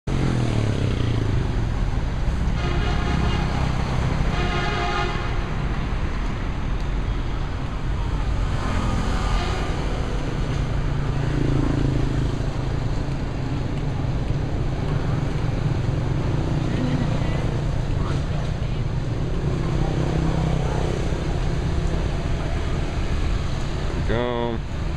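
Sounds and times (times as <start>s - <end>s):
traffic rumble: 0.1s - 24.9s
horn toots: 2.5s - 5.6s.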